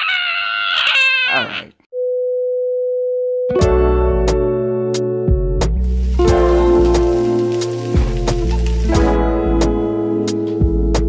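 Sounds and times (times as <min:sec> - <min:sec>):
child squealing: 0:00.0 - 0:01.8
background music: 0:03.5 - 0:11.0.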